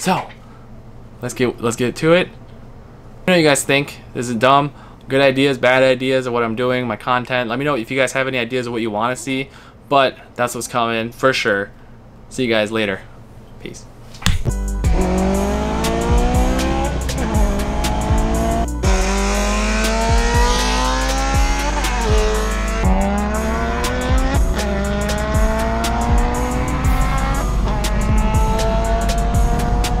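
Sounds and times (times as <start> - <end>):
music: 14.5 - 30.0
car engine accelerating hard: 14.9 - 30.0.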